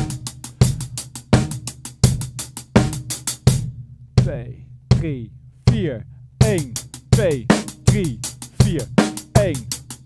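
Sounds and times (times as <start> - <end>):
bass drum beats: 0.0 - 10.0
hi-hat strokes: 6.4 - 10.0.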